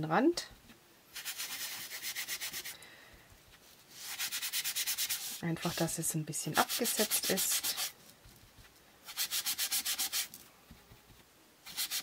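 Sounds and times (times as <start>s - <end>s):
sponge scratching on cardstock: 6.6s - 7.9s, 9.1s - 12.0s.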